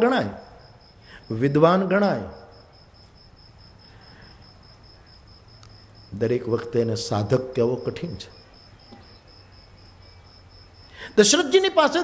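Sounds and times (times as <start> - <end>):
faint hiss: 0.0 - 12.0
high-pitched insect chirping: 0.0 - 12.0
man's voice: 11.2 - 12.0.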